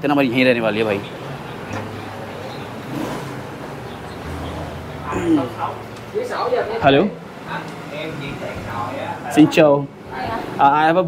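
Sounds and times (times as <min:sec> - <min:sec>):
street traffic hum: 0:00.0 - 0:11.0
faint voice: 0:05.0 - 0:05.8.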